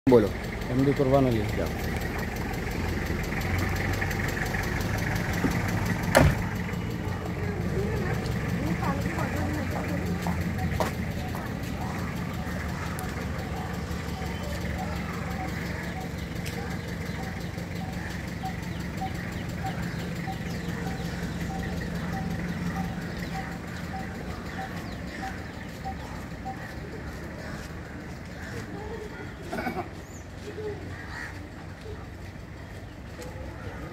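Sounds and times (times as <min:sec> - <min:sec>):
faint regular ticking: 0:00.1 - 0:28.4
vehicle engine idling: 0:00.1 - 0:33.9.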